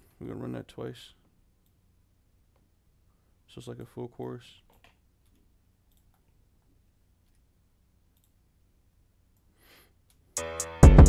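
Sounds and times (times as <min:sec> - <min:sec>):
computer mouse clicks: 0:04.7 - 0:06.4, 0:08.1 - 0:08.4.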